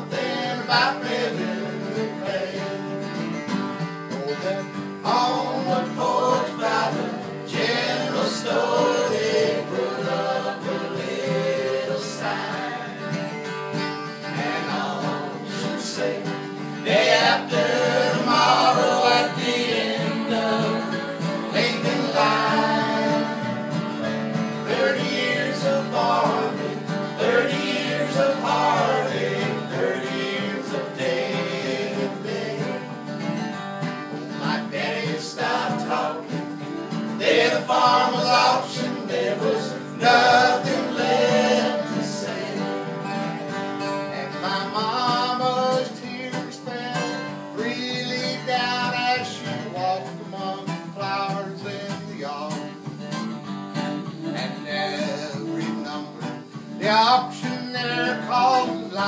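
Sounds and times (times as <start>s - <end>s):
strummed acoustic guitars: 0.0s - 59.0s.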